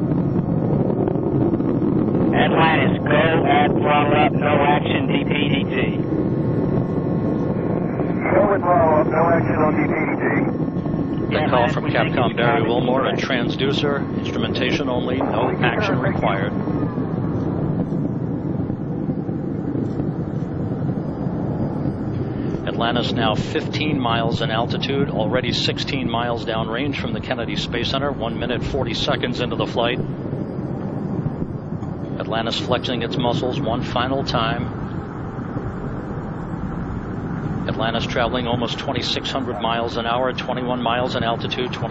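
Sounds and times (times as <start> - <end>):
rocket motors rumbling: 0.0 - 41.9.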